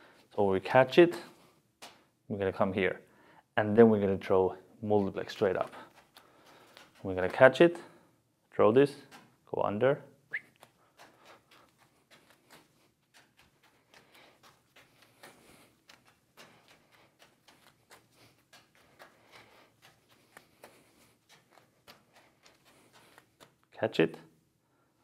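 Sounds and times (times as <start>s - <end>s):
juggling balls tapping hands: 1.1s - 2.1s, 4.9s - 8.0s, 9.0s - 9.4s, 10.3s - 24.2s.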